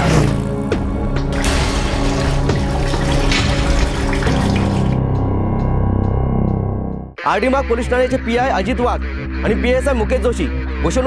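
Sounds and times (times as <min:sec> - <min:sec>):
background music: 0:00.0 - 0:11.0
tap water running into bucket: 0:01.3 - 0:05.0.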